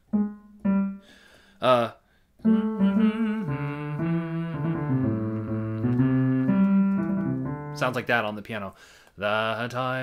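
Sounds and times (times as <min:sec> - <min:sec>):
keyboard piano melody: 0:00.0 - 0:01.4, 0:02.4 - 0:08.1.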